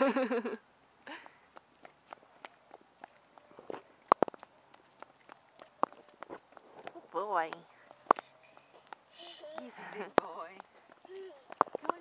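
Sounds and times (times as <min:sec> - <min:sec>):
footsteps on paved path: 0:00.1 - 0:12.0.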